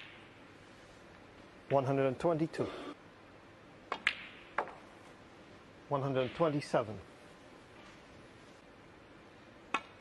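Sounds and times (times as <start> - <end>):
snooker balls clicking: 3.9 - 4.9, 9.7 - 10.0.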